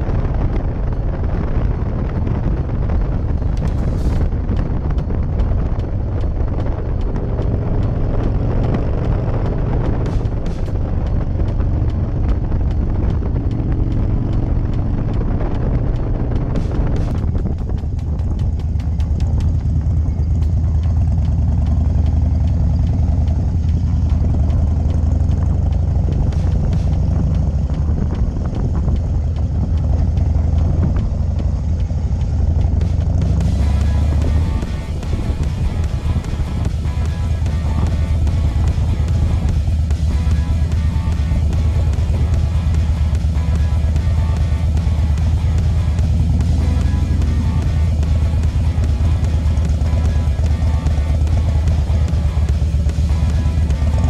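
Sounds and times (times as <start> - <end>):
motorcycle engine rumbling: 0.0 - 54.0
music: 0.0 - 54.0.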